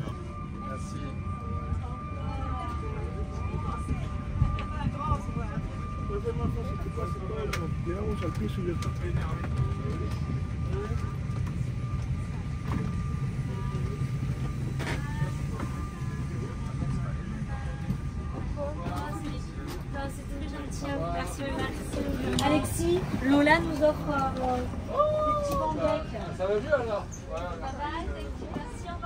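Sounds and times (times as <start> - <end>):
faint chatter of people: 0.0 - 29.0
thin steady whine: 0.0 - 29.0.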